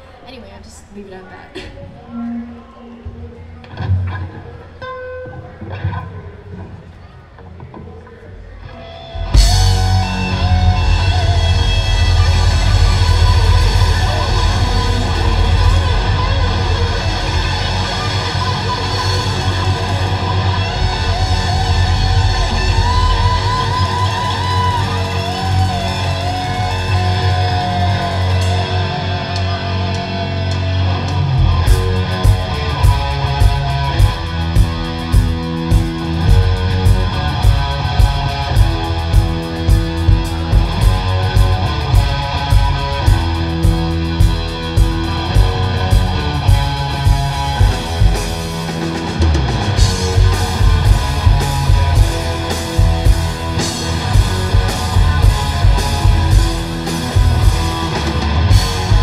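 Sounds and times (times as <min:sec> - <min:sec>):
rock band playing: 0:08.6 - 0:59.0
lead guitar bending in pitch: 0:08.8 - 0:59.0
drum kit and bass beat: 0:09.2 - 0:59.0.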